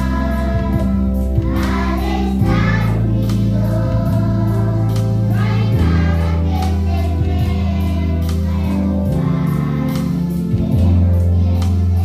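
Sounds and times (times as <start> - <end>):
children singing in unison: 0.0 - 12.0
music with steady beat and bass: 0.0 - 12.0.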